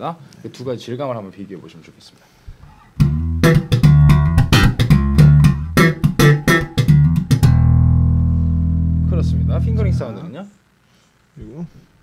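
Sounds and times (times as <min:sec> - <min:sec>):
electric bass plucked fingerstyle: 0:02.7 - 0:10.1.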